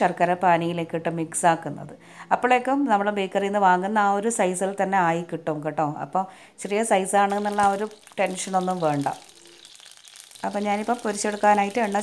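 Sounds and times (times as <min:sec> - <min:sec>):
woman talking: 0:00.0 - 0:09.2, 0:10.4 - 0:12.0
oil sizzling: 0:06.6 - 0:12.0.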